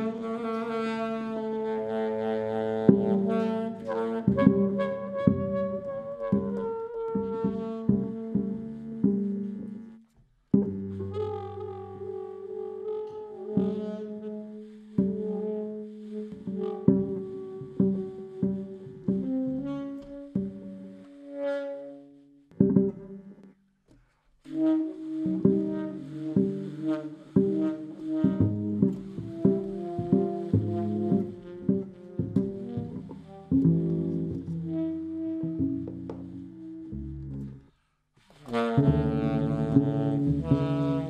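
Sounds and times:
tenor saxophone playing: 0:00.0 - 0:10.0, 0:10.7 - 0:23.6, 0:24.5 - 0:37.8, 0:38.4 - 0:41.0
double bass: 0:00.0 - 0:23.6, 0:24.5 - 0:41.0
drums: 0:02.8 - 0:11.4, 0:24.4 - 0:36.9.

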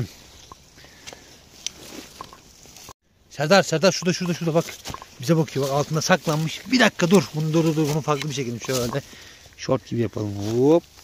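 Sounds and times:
footsteps through dry leaves: 0:00.1 - 0:03.0, 0:03.9 - 0:11.0
twigs clicking underfoot: 0:00.3 - 0:02.9, 0:03.9 - 0:09.6.

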